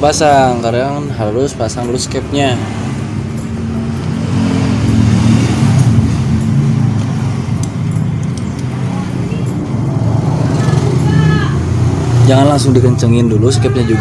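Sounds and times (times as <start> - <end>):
vehicle engine running: 0.0 - 14.0.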